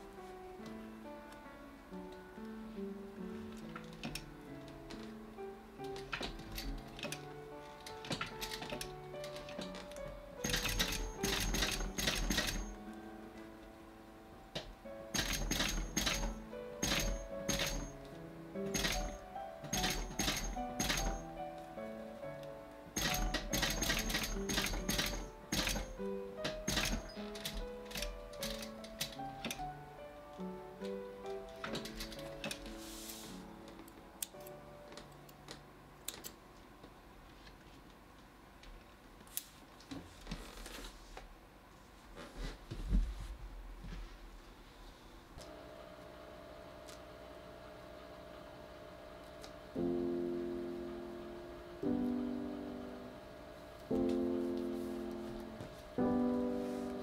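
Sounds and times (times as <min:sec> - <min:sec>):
background music: 0:00.0 - 0:36.1, 0:49.8 - 0:57.0
sewing machine rapid clicking: 0:10.4 - 0:12.7, 0:15.1 - 0:17.9, 0:18.7 - 0:21.2, 0:23.0 - 0:29.6.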